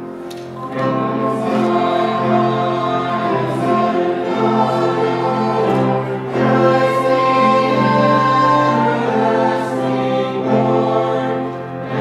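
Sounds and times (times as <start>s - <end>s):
congregation singing a hymn: 0.0s - 12.0s
piano: 0.0s - 12.0s
violin: 0.0s - 12.0s.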